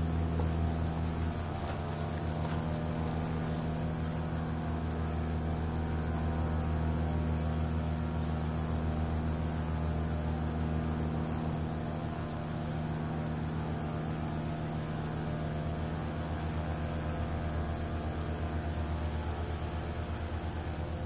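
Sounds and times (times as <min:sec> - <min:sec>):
crickets trilling: 0:00.0 - 0:21.0
steady low hum: 0:00.0 - 0:21.0.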